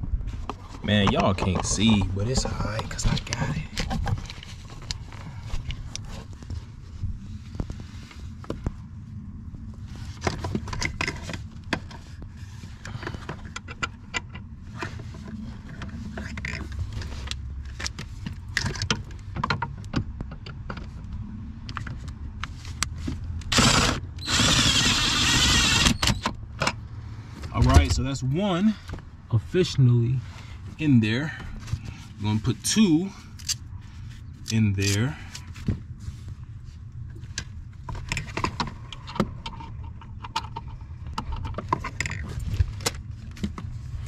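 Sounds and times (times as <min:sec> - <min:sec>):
cordless drill driving bolt: 0:23.5 - 0:26.3.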